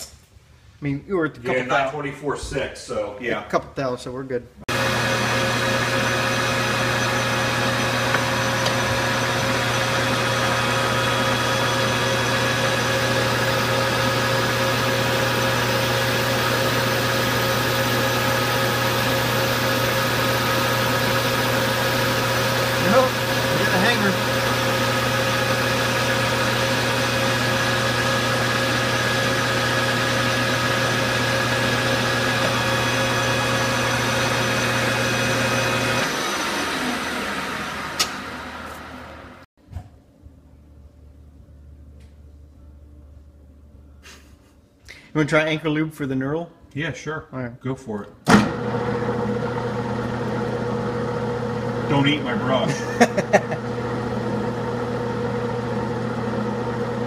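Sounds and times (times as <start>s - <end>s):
lathe spindle spinning down: 4.7s - 39.4s, 48.3s - 57.0s
metal lathe humming and whining: 4.7s - 39.4s.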